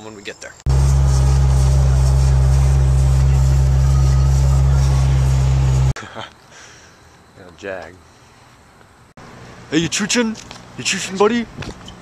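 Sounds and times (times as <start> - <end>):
car engine drone: 0.7 - 6.0.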